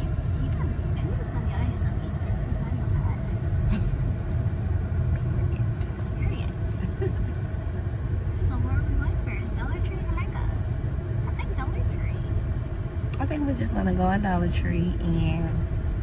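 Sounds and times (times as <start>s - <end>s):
car engine rumble: 0.0s - 16.0s
tyres on road: 0.0s - 16.0s.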